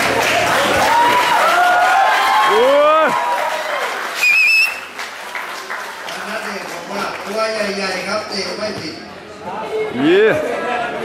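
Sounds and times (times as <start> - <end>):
warbling whistle blast: 4.2 - 4.9.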